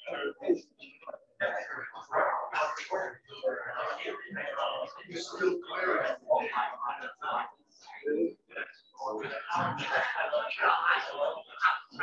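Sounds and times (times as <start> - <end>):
person talking indistinctly: 0.0 - 12.0.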